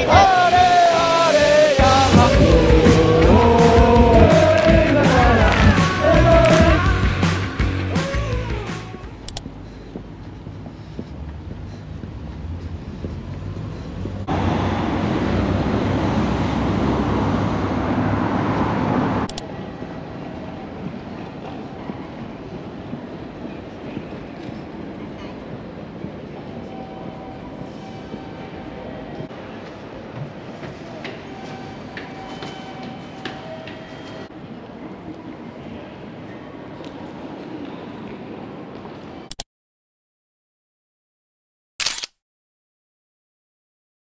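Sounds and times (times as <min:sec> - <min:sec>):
train rushing past: 0:00.0 - 0:09.0, 0:11.5 - 0:39.3.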